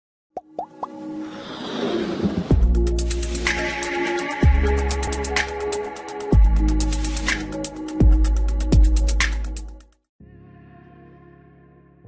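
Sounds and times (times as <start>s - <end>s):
rising plop sound effects: 0.4s - 1.0s
musical riser: 1.0s - 7.6s.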